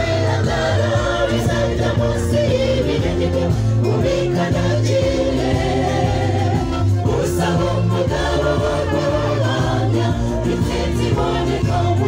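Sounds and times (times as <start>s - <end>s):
gospel choir singing: 0.0s - 12.0s
low bass line: 0.0s - 12.0s.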